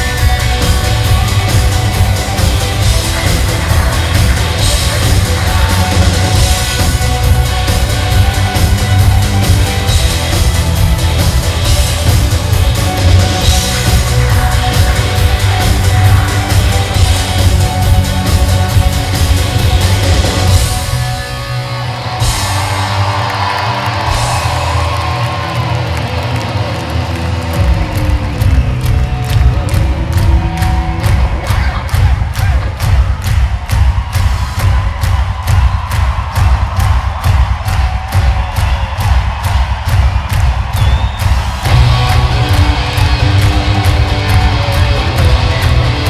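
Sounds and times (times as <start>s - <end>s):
live rock band playing: 0.0s - 32.2s, 41.3s - 46.0s.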